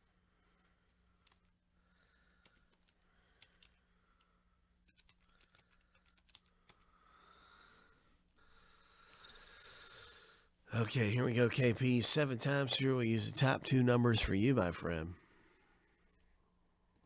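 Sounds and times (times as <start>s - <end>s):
keyboard typing: 1.2s - 1.5s, 2.3s - 7.0s.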